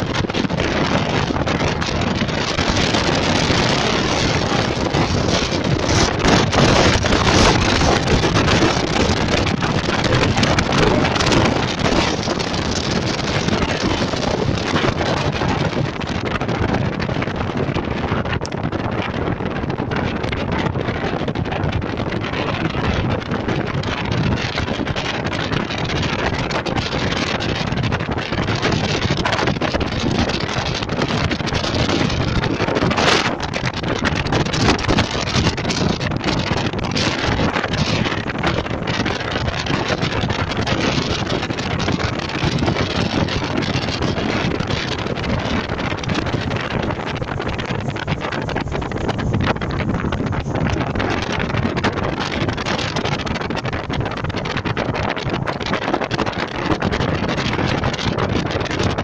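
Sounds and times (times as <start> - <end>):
moving car running noise: 0.0 - 59.0
wind buffeting microphone: 0.0 - 59.0.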